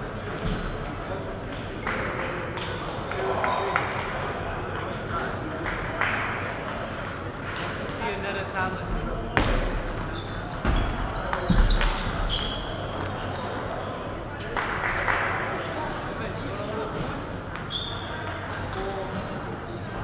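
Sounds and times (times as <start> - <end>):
chatter in large hall: 0.0 - 20.0
shoes squeaking on floor: 0.3 - 0.9, 9.6 - 13.0, 17.6 - 19.6.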